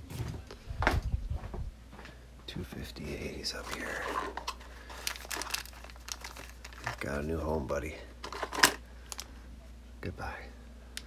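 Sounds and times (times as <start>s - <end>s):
plastic bag crinkling: 3.4s - 9.4s.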